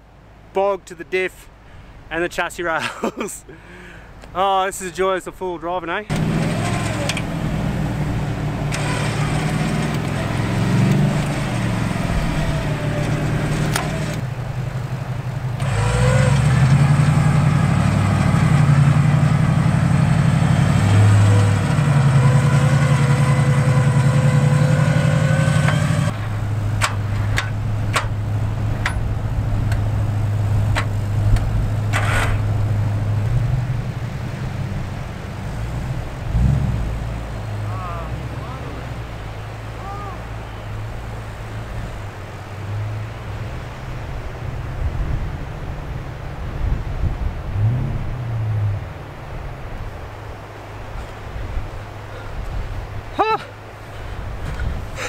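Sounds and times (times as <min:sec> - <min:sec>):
car engine revving under load: 0:06.1 - 0:49.4.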